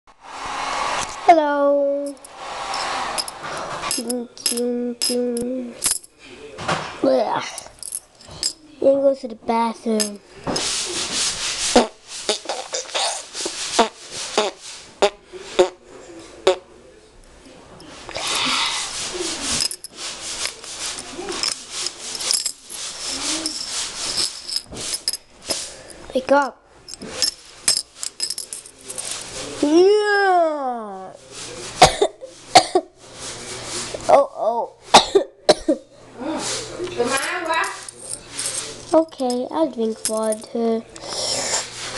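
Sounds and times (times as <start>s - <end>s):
scraping rub: 2.1s - 4.2s, 10.0s - 15.0s, 18.0s - 26.0s
person coughing harshly: 31.8s - 32.9s, 34.9s - 35.9s.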